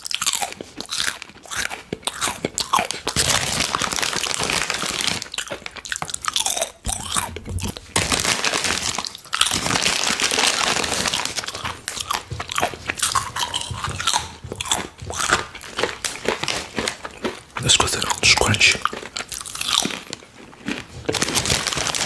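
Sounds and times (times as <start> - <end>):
chewing crisp chips: 0.0 - 22.0
mouth sounds: 17.6 - 18.9.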